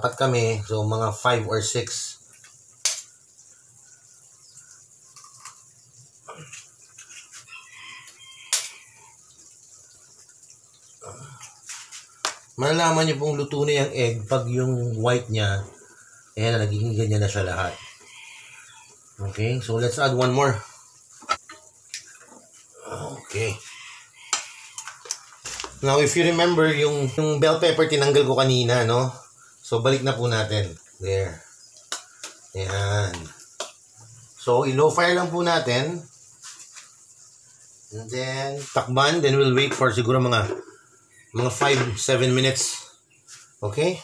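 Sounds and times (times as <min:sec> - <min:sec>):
eggs cracking on pan rim: 0:02.4 - 0:03.2, 0:05.1 - 0:05.7, 0:08.4 - 0:08.9, 0:24.2 - 0:25.8, 0:31.8 - 0:32.5
faint calls: 0:15.1 - 0:36.3.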